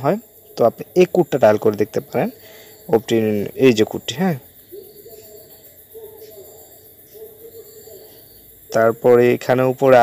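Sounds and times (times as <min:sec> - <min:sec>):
man's drawn-out hesitation sound: 0:00.0 - 0:10.0.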